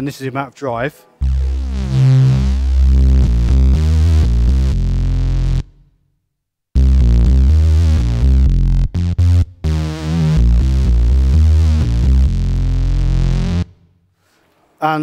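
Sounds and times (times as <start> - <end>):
distorted synthesizer low notes: 1.2 - 6.0, 6.8 - 13.9.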